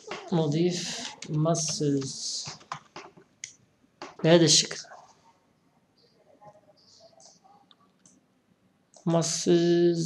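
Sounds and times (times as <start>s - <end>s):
person speaking: 0.0s - 3.2s, 4.0s - 5.2s
computer keyboard typing: 0.8s - 3.2s.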